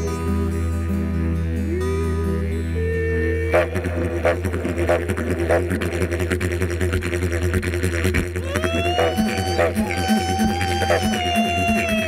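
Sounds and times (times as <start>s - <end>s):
didgeridoo drone: 0.0s - 12.0s.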